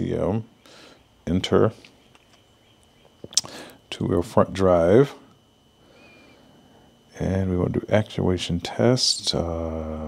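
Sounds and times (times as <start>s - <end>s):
man speaking: 0.0s - 0.6s, 1.3s - 1.9s, 3.4s - 5.3s, 7.1s - 10.0s
faint high whine: 0.0s - 10.0s
faint high chirp: 5.9s - 6.5s.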